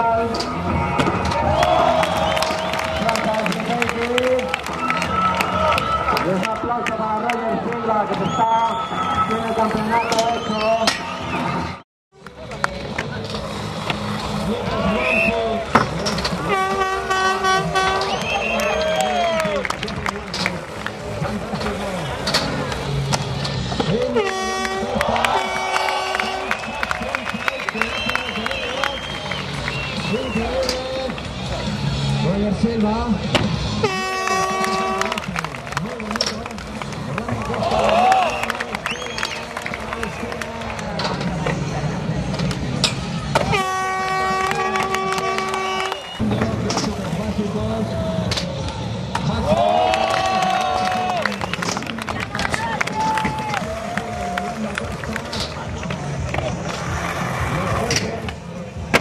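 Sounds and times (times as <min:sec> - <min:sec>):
crowd noise: 0:00.0 - 0:59.0
air horn blasts: 0:16.3 - 0:19.4, 0:24.0 - 0:26.9, 0:33.7 - 0:35.4, 0:43.4 - 0:46.2.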